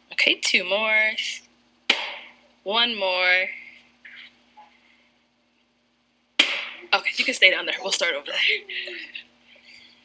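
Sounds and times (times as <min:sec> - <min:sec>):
balloon popping: 0:01.9 - 0:02.4, 0:06.4 - 0:06.9.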